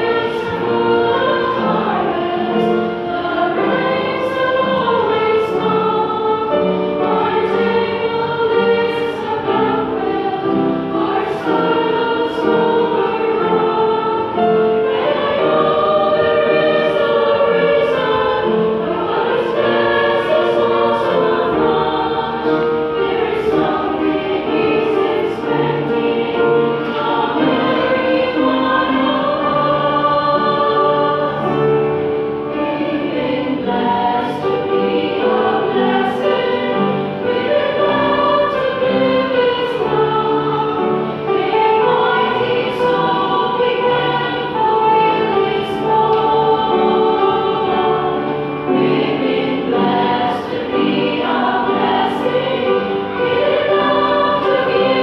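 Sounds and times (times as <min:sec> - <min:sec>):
women's choir singing: 0:00.0 - 0:55.0.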